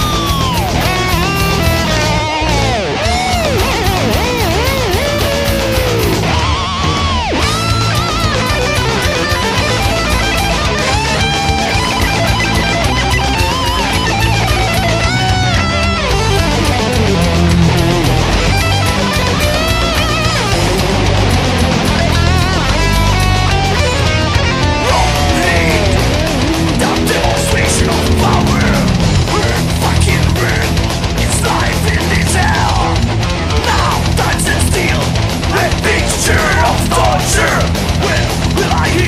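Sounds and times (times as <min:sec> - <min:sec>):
distorted electric guitars: 0:00.0 - 0:39.0
drums: 0:00.0 - 0:39.0
lead guitar bending notes: 0:00.0 - 0:39.0.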